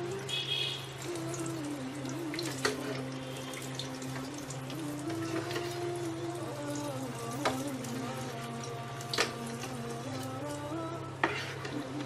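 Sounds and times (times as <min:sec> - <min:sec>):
chicken deep-frying in oil: 0:00.0 - 0:12.0.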